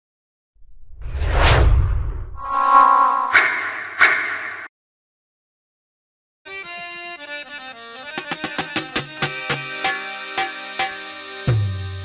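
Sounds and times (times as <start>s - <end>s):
whoosh sound effect: 0.8s - 4.7s.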